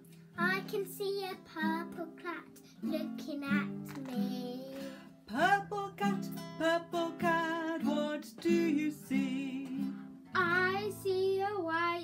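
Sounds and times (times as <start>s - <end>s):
acoustic guitar: 0.0s - 12.0s
woman singing: 10.4s - 12.0s.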